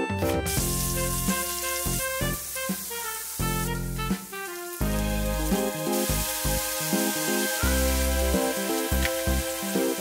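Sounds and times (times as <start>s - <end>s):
background music: 0.0s - 10.0s
food sizzling in a pan: 0.4s - 10.0s.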